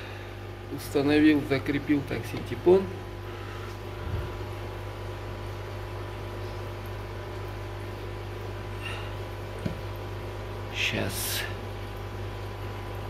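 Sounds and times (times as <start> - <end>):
aquarium equipment electrical hum: 0.0 - 13.0.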